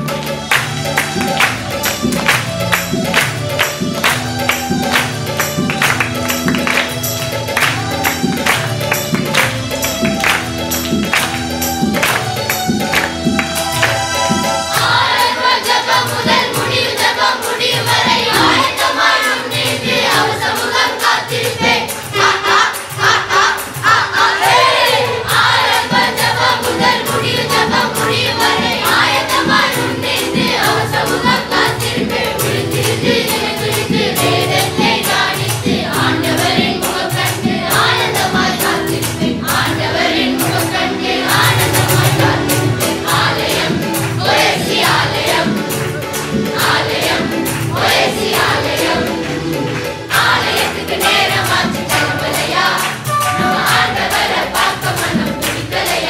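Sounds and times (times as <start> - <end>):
children's choir singing: 0.0 - 56.0
percussion steady beat: 0.0 - 56.0.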